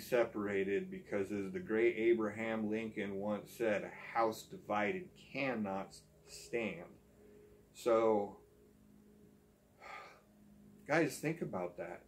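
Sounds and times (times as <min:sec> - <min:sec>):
man talking: 0:00.0 - 0:07.0, 0:07.8 - 0:08.4, 0:10.9 - 0:12.0
faint low hum: 0:00.0 - 0:12.0
man breathing in: 0:09.8 - 0:10.3.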